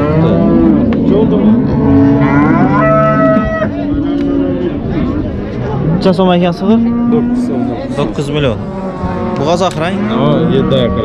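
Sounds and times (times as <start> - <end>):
cattle mooing: 0.0 - 11.0
higher-pitched cattle call: 2.1 - 4.7.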